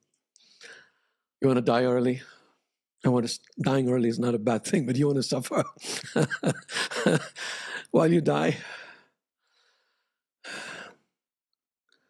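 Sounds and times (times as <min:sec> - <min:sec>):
man breathing: 0:00.4 - 0:01.2, 0:06.7 - 0:08.0, 0:08.6 - 0:11.0.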